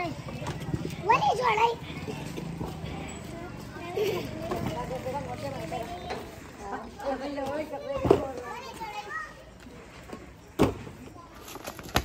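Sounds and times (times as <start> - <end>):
people talking and calling: 0.0 - 12.0.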